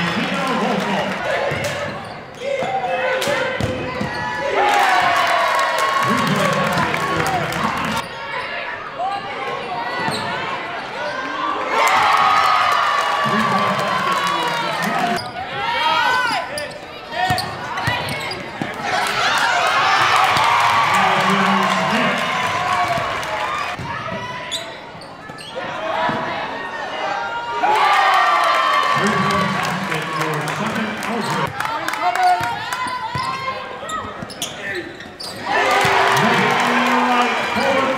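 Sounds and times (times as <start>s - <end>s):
voices of players and spectators: 0.0s - 37.9s
sneakers squeaking: 1.4s - 2.9s, 3.5s - 4.4s, 8.0s - 11.4s, 14.2s - 19.2s, 23.7s - 26.3s, 32.4s - 36.0s.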